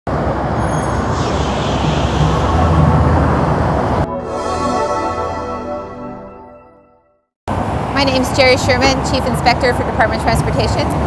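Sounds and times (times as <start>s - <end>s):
traffic rumble: 7.5s - 11.0s.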